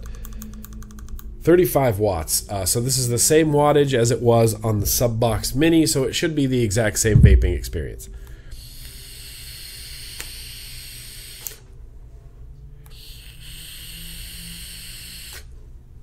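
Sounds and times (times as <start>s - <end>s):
vape hissing: 8.6s - 11.6s, 12.9s - 15.5s.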